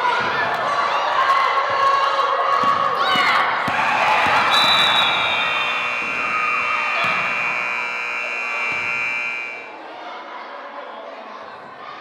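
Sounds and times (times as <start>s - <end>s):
crowd noise in a gym: 0.0s - 12.0s
scoreboard buzzer tone: 4.4s - 9.8s.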